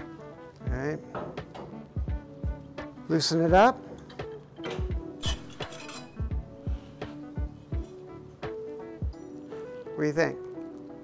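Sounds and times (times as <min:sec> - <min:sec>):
background music with plucked notes: 0:00.0 - 0:11.0
sheet metal clinks and scrapes: 0:04.0 - 0:06.4.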